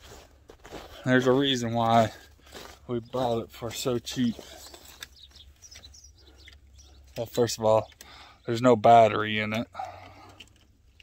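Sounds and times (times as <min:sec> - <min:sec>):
faint bird chirps: 0:04.4 - 0:07.2.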